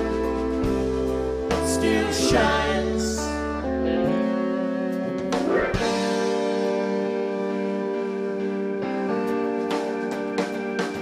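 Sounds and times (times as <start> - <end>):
light drums: 0.0 - 2.6, 9.3 - 11.0
sustained guitar chords: 0.0 - 11.0.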